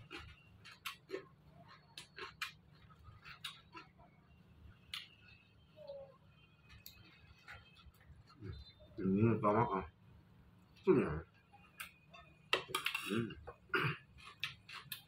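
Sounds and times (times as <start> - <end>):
fingers mixing rice: 0.0 - 4.1
chewing clicks and smacks: 0.0 - 4.2, 4.8 - 5.2, 14.2 - 15.0.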